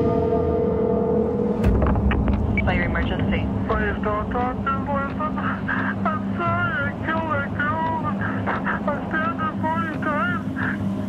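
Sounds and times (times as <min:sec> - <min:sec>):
steady low hum: 0:00.0 - 0:11.0
man speaking over telephone: 0:03.0 - 0:10.8.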